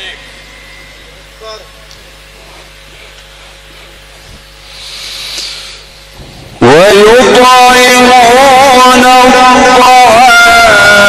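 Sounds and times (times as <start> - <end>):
low steady hum: 0.0 - 11.0
brief hiss: 4.6 - 6.0
man reciting melodically: 6.6 - 11.0.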